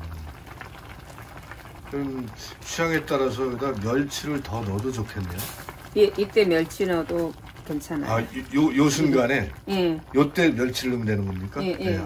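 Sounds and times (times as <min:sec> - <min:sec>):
soup bubbling at a boil: 0:00.0 - 0:12.0.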